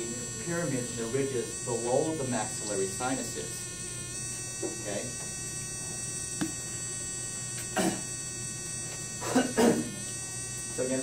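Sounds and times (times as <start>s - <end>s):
electrical hum with high whine: 0.0s - 11.0s.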